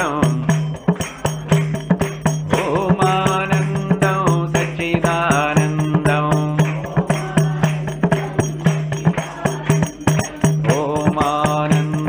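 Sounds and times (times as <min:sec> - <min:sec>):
man singing a chant: 0:00.0 - 0:01.5, 0:02.5 - 0:12.0.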